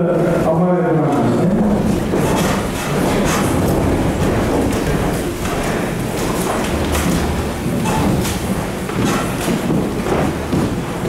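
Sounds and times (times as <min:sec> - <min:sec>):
audience rustling and clattering: 0:00.2 - 0:11.0.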